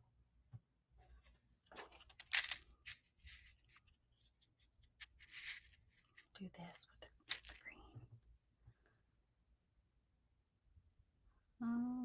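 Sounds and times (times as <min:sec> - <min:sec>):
faint whispering: 0:06.4 - 0:08.1.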